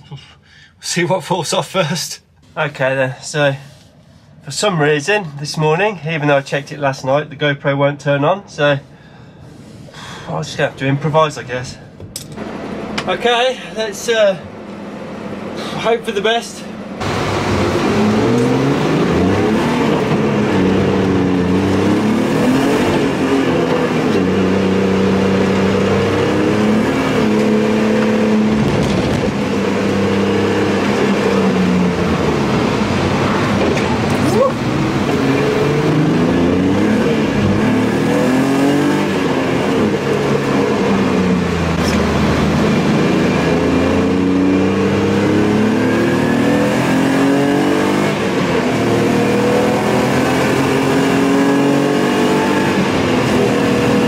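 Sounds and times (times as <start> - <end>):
car engine revving: 10.4 - 54.0.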